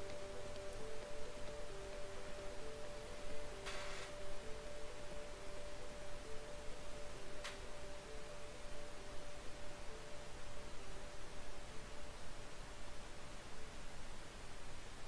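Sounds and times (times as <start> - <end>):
soft electronic tones: 0.0 - 12.3.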